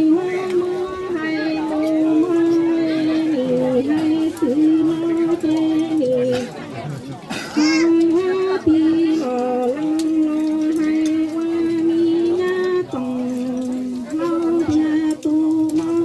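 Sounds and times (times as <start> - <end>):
person singing folk song solo: 7.6 - 16.0.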